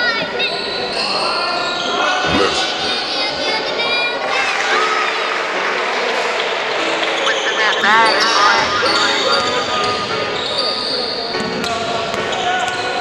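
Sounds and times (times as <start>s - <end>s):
players calling out: 2.2s - 3.1s, 7.1s - 9.9s.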